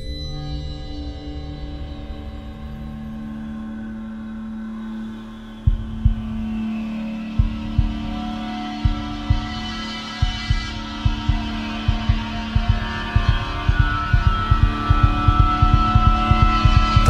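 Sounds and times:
low heartbeat-like thumps: 5.7s - 17.0s.

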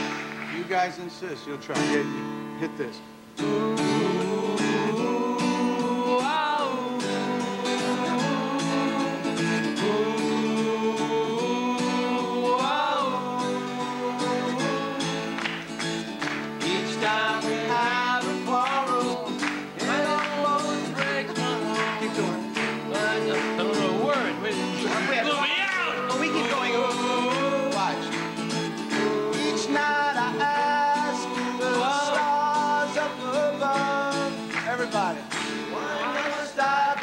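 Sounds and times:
men singing together: 3.4s - 15.9s, 16.5s - 37.0s.

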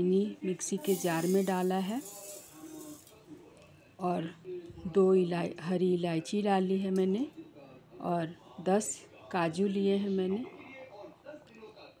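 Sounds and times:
sugar pouring into metal jar: 0.7s - 3.2s.

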